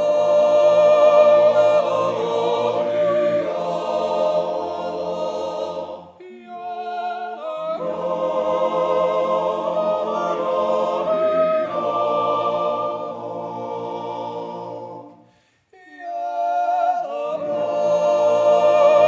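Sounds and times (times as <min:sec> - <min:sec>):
men's choir yodelling a cappella: 0:00.0 - 0:15.2, 0:15.8 - 0:19.0.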